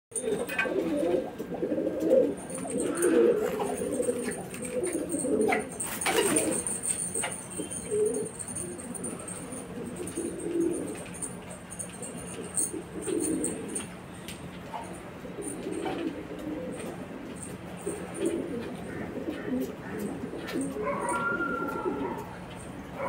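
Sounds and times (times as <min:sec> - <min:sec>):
pigeons cooing: 0:00.2 - 0:23.0.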